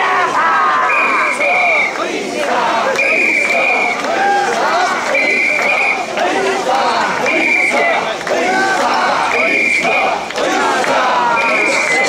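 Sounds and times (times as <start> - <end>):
crowd chanting in rhythm: 0.0 - 12.0.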